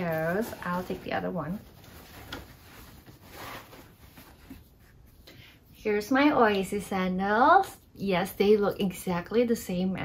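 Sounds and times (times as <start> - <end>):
rustling of cloth bag: 0.0 - 5.1.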